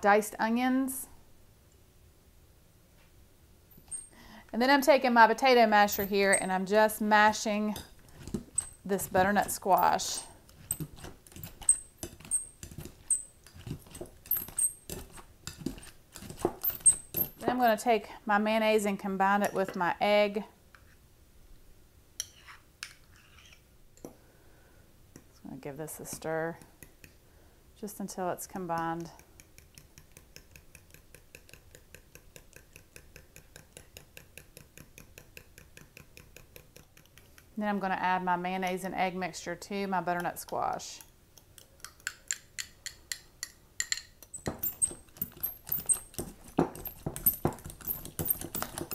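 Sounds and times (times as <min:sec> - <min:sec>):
metal clinking against glass: 0:43.9 - 0:48.9.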